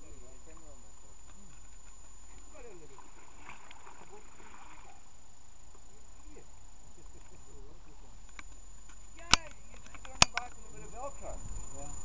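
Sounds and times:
people talking: 0.0s - 0.8s, 2.3s - 3.0s, 6.2s - 8.1s, 9.2s - 12.0s
steady high-pitched whine: 0.0s - 12.0s.

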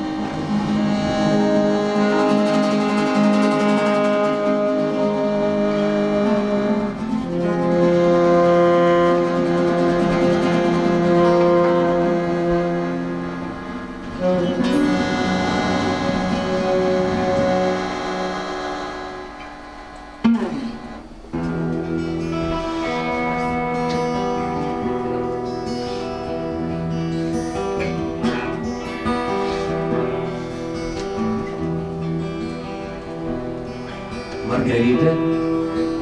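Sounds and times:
acoustic guitars strumming: 0.0s - 36.0s
saxophone: 0.0s - 36.0s.

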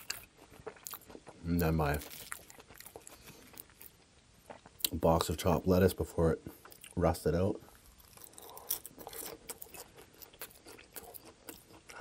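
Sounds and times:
crisp chewing crunches: 0.0s - 5.4s, 6.5s - 12.0s.

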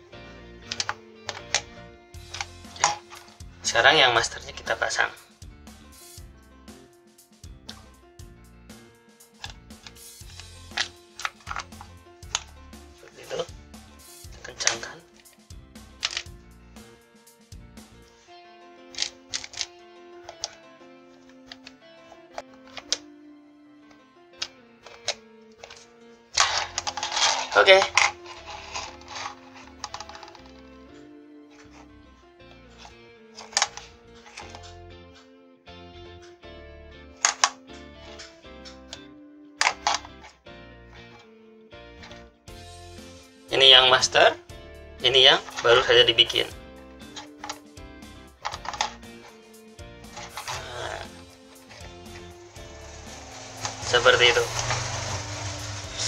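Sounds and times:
background music with sustained notes: 0.0s - 56.0s
plastic housing clicks and knocks: 29.1s - 30.6s, 48.4s - 49.3s
handling noise: 50.1s - 56.0s.

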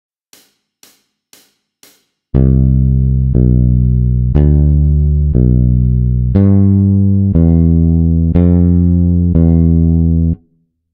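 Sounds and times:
hi-hat ticks: 0.3s - 2.2s.

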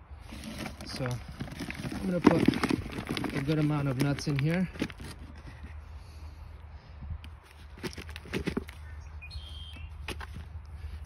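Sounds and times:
soft rustling: 0.2s - 5.8s
walnuts tumbling onto soil: 0.2s - 5.8s, 7.5s - 8.9s.

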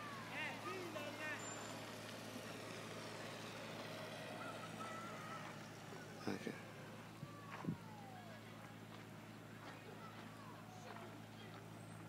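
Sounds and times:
faint distant voices: 0.0s - 12.0s
low engine-like hum: 0.0s - 12.0s.

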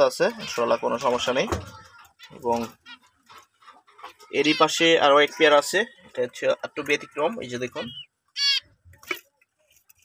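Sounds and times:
finches chirping: 7.5s - 8.7s.

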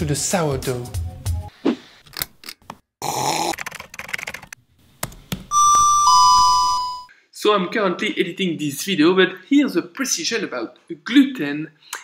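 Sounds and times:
two-note doorbell chime: 5.5s - 7.1s.

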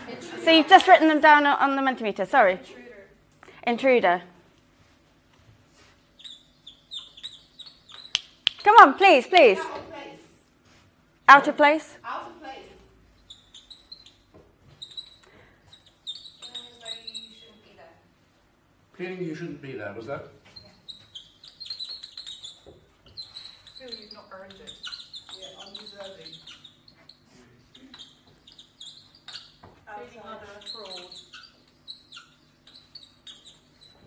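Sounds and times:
marker pen squeaking on whiteboard: 0.1s - 2.0s, 4.6s - 10.1s, 10.7s - 17.9s, 20.3s - 34.0s.

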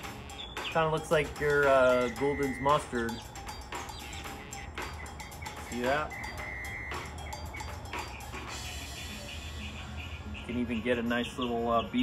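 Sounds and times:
brief high tone: 5.6s - 7.1s.

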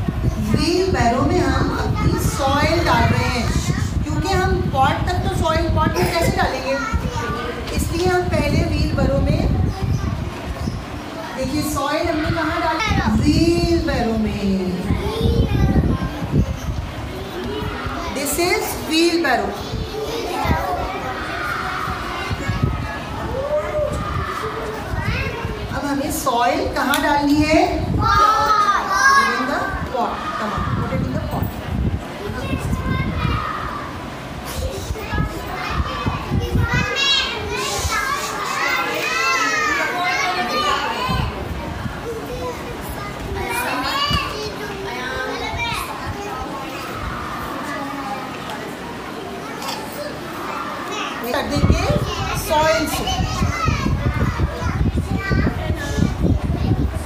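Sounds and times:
children chattering: 0.0s - 57.0s.

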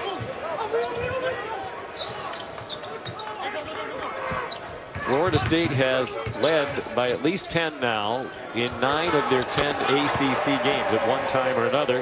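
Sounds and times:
players calling out: 0.0s - 12.0s
sneakers squeaking: 0.1s - 7.2s, 8.0s - 9.8s.

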